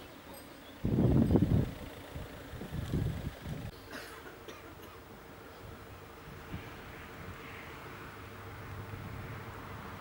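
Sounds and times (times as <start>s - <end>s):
wind buffeting microphone: 0.8s - 3.7s.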